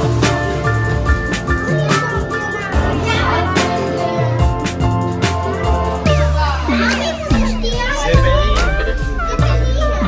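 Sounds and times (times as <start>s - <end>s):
upbeat music with deep bass: 0.0s - 10.0s
children's excited voices: 1.6s - 10.0s.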